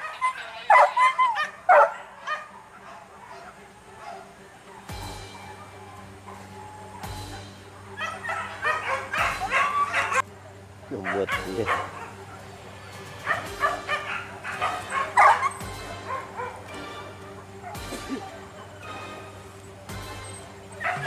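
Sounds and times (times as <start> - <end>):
dogs yelping and barking: 0.0 - 21.0
dog whining: 8.0 - 10.2.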